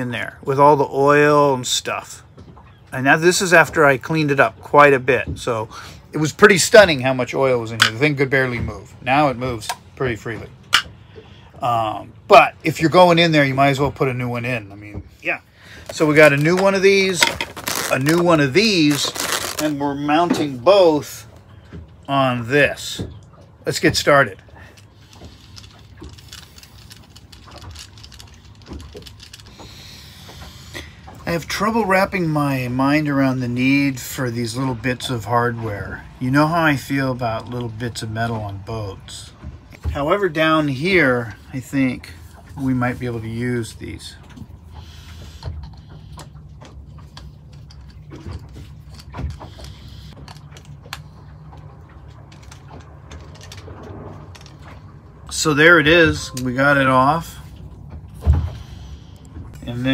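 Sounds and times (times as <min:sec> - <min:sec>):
low steady hum: 0:00.0 - 0:59.9
low rumble: 0:46.6 - 0:59.9.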